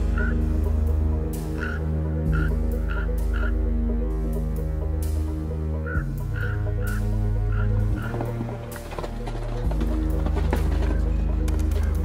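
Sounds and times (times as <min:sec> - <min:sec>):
ravens croaking: 0:00.0 - 0:04.0, 0:05.4 - 0:12.0
low ominous music chords: 0:00.0 - 0:12.0.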